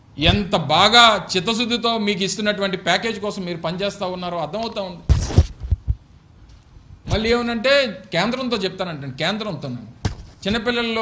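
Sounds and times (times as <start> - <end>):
dull low thumps: 5.4 - 6.1.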